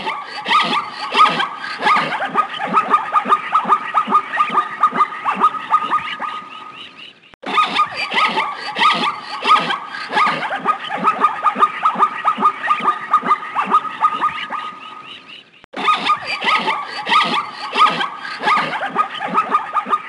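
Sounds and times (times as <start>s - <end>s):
rapid animal calls: 0.0s - 20.0s.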